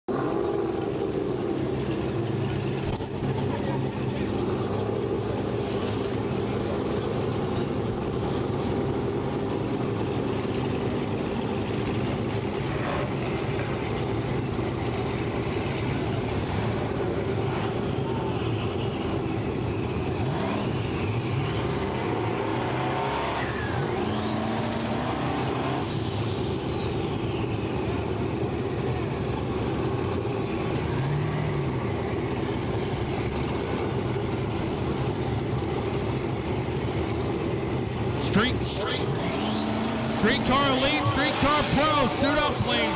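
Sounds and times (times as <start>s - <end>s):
race car engines droning: 0.1s - 42.9s
high whine: 38.2s - 42.9s.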